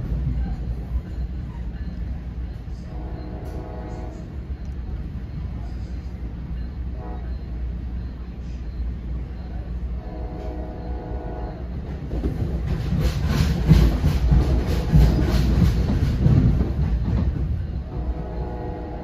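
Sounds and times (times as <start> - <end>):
wheels clickety-clack over rail joints: 0.0 - 7.2, 10.2 - 19.0
train coach rumbling on rails: 0.0 - 19.0.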